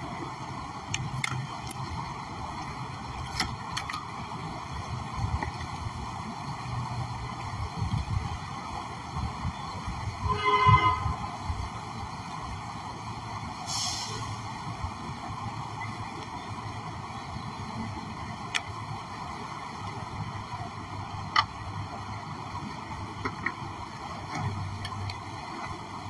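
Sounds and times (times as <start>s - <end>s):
fountain water splashing: 0.0s - 26.0s
street traffic: 0.0s - 26.0s.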